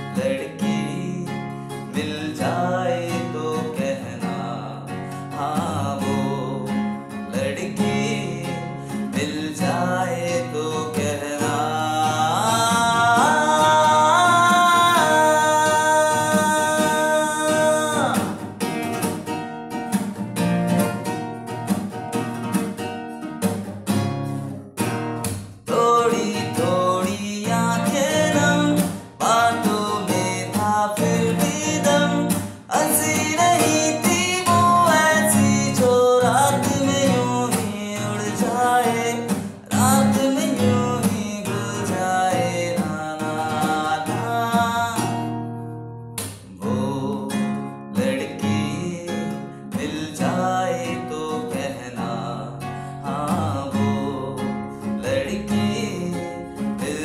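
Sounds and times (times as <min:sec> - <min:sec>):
man singing: 0:00.0 - 0:19.1, 0:25.6 - 0:45.3, 0:46.4 - 0:57.0
strummed classical guitar: 0:00.0 - 0:57.0.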